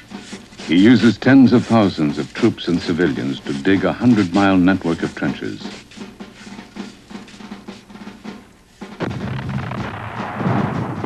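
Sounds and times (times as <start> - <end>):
drum roll: 0.0 - 11.0
loud rumbling explosion: 9.0 - 11.0.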